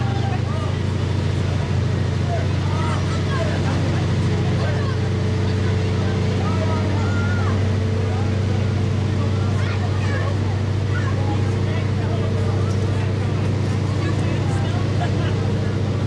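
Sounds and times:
crowd chatter: 0:00.0 - 0:16.0
vehicle engine running: 0:00.0 - 0:16.0.

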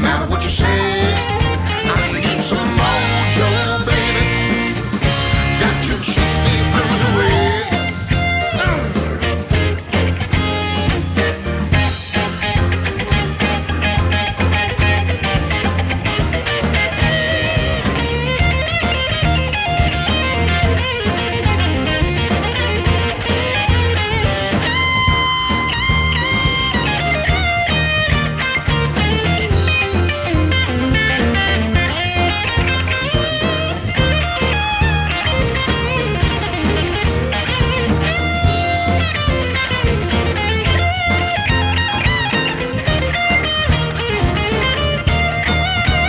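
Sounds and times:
blues-rock band playing: 0:00.0 - 0:46.0
lead electric guitar bending notes: 0:00.0 - 0:46.0.

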